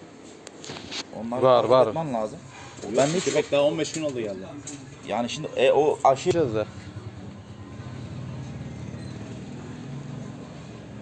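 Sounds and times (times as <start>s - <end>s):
vehicle engine idling: 4.3s - 11.0s.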